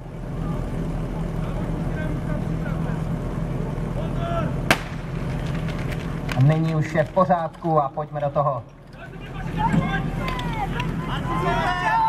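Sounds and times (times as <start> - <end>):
pump engine droning: 0.0 - 12.0
sharp crack: 4.7 - 6.9.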